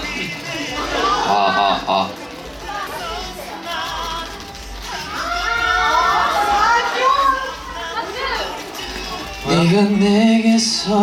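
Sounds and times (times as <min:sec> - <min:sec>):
crowd squealing and shouting: 0:00.0 - 0:11.0.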